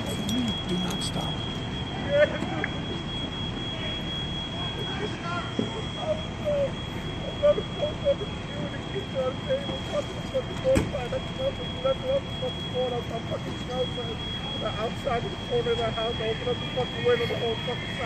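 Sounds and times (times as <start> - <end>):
distant voices calling out: 0.0 - 1.8
constant high-pitched tone: 0.0 - 18.0
fire engine idling rumble: 0.0 - 18.0.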